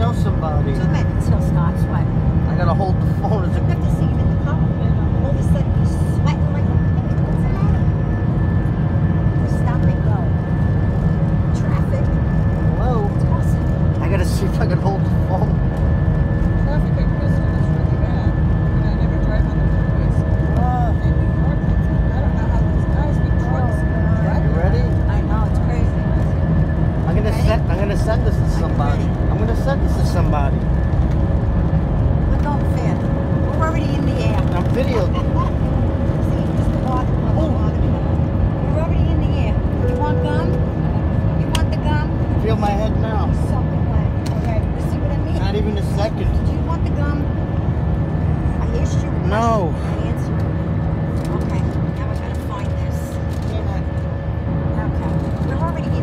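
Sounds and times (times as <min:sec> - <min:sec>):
jet engines at takeoff power: 0:00.0 - 0:56.0
voices in the cabin: 0:00.0 - 0:56.0.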